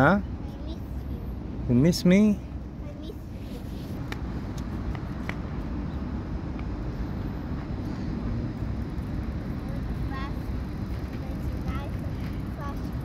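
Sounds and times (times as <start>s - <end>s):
low outdoor rumble: 0.2s - 13.0s.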